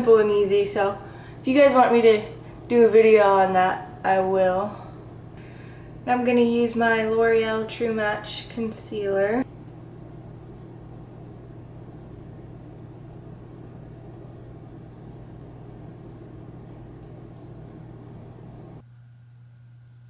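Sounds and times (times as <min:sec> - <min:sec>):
low hum: 0:00.0 - 0:20.0.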